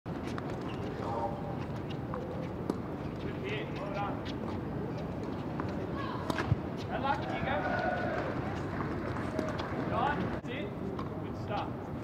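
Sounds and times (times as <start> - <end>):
murmur of distant voices: 0.9 - 12.0
tennis balls struck and bouncing: 5.3 - 8.2.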